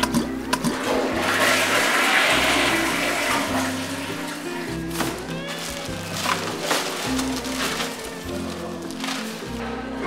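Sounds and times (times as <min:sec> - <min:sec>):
background music: 0:00.0 - 0:10.0
toilet flushing: 0:00.2 - 0:05.2.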